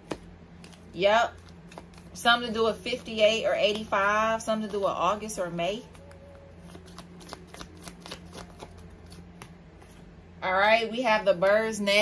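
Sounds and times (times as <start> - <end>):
cards shuffled by hand: 0.1 - 2.2, 5.9 - 10.0.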